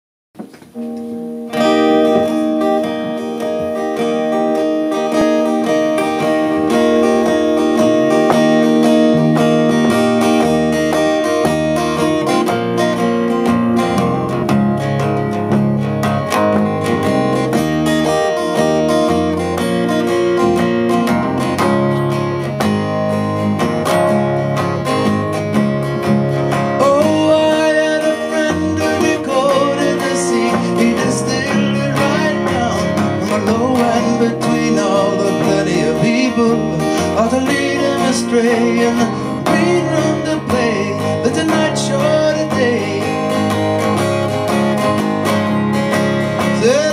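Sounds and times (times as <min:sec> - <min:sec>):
acoustic guitars playing chords: 0:00.4 - 0:46.9.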